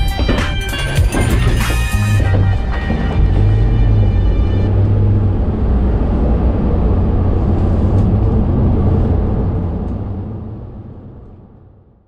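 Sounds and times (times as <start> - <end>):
van engine and road rumble: 0.0 - 12.0.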